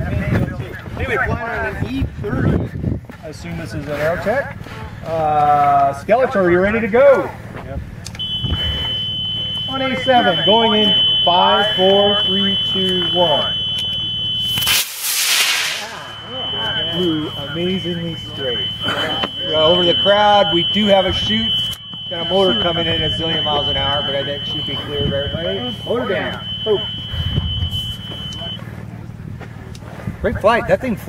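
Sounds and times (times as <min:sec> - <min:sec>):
high electronic tone: 0:08.2 - 0:28.6
rocket motor rushing hiss: 0:14.5 - 0:16.0.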